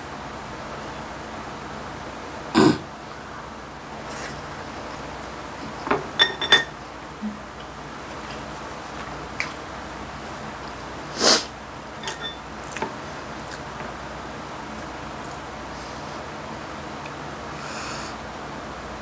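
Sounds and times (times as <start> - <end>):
chopsticks clinking on dishes: 5.9 - 6.8, 12.0 - 12.8.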